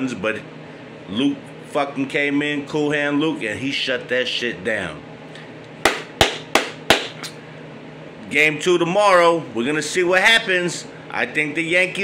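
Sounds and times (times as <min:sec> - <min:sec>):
man clapping hands: 0:05.8 - 0:07.3.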